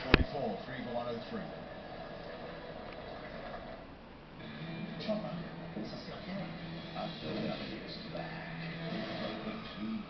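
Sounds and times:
music from tv speaker: 4.4s - 10.0s.

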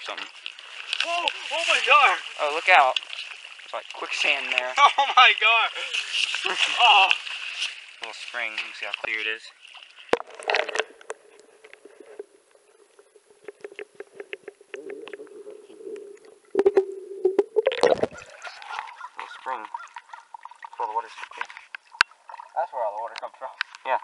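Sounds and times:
water rushing: 0.0s - 9.0s, 10.1s - 21.2s
small underwater clicks and knocks: 8.4s - 24.0s.

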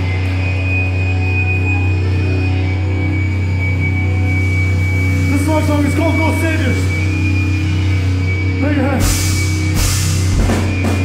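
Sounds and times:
electric guitars and bass sustained note: 0.0s - 11.0s
high steady whine: 0.0s - 11.0s.

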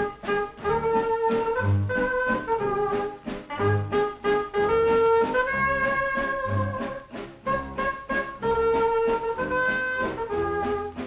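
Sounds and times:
jazzy dance band with brass: 0.0s - 11.0s.

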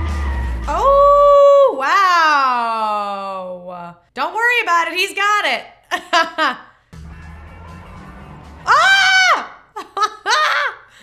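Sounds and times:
woman shrieking in surprise: 8.7s - 9.6s.

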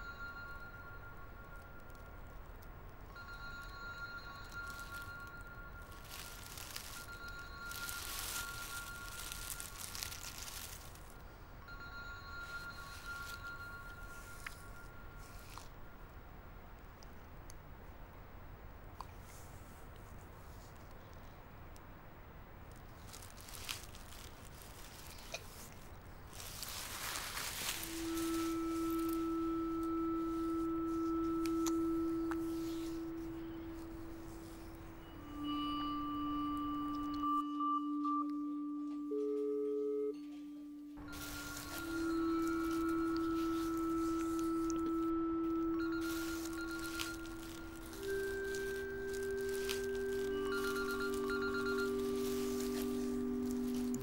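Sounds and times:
background hiss: 0.0s - 54.0s
sustained electronic tones: 27.5s - 54.0s.

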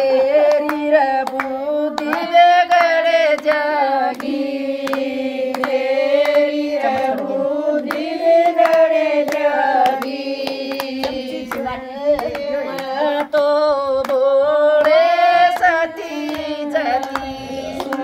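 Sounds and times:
rhythmic handclaps: 0.0s - 18.0s
women singing folk song: 0.0s - 18.0s.

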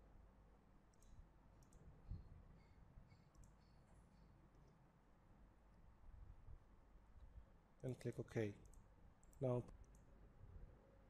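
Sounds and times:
computer mouse clicks: 0.9s - 1.9s, 3.3s - 3.6s, 8.6s - 10.1s.

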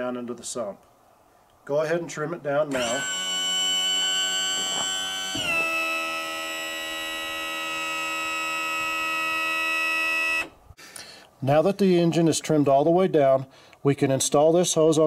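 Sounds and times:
power trim motor whining: 2.7s - 10.6s.

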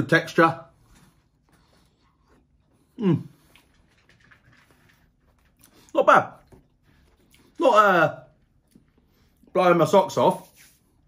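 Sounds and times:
quiet chewing: 0.8s - 7.6s, 8.3s - 9.5s.

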